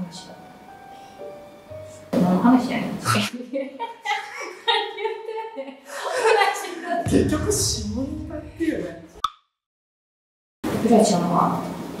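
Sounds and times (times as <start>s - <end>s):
people talking and laughing: 3.1s - 7.4s.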